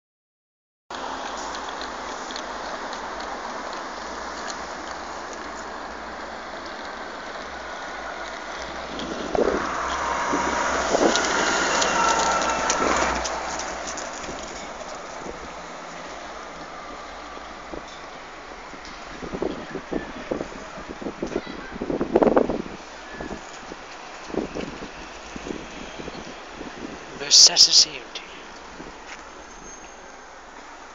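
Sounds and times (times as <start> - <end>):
steady traffic: 0.9 - 30.9
bus driving past: 1.0 - 19.4
wind noise: 8.7 - 13.6, 18.7 - 27.3.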